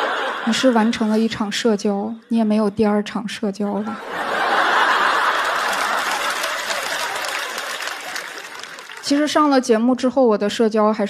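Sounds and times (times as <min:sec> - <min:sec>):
audience laughing: 0:00.0 - 0:01.4, 0:03.8 - 0:09.0
audience applauding: 0:04.2 - 0:09.5.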